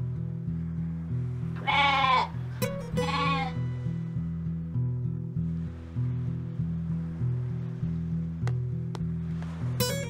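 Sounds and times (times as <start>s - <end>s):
background music with bass line: 0.0s - 10.0s
goat bleating: 1.6s - 3.6s.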